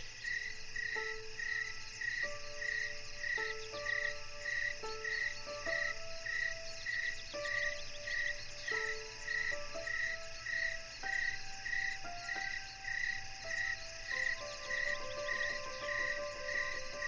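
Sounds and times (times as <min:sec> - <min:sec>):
insects chirping: 0:00.0 - 0:17.0
slow solo piano: 0:00.8 - 0:17.0.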